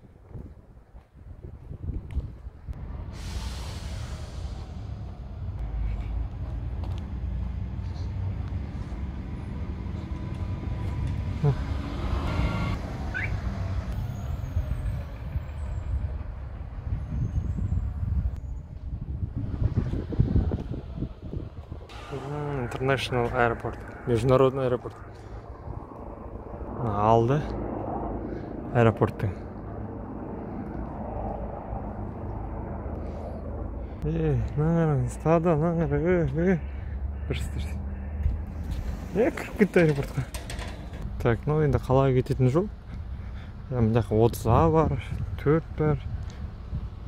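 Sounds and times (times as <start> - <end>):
large vehicle engine running: 38.2 - 41.2.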